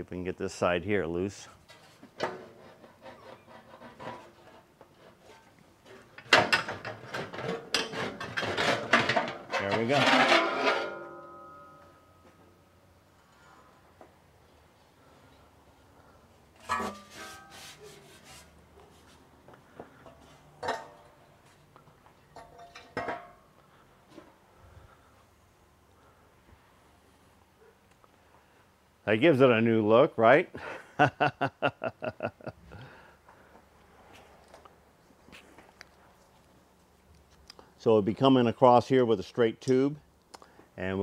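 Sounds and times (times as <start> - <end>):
metal scraping and rattling: 1.6 - 12.2, 16.6 - 18.4
metal panel clanks: 6.2 - 12.0
ringing metal tone: 9.7 - 12.6.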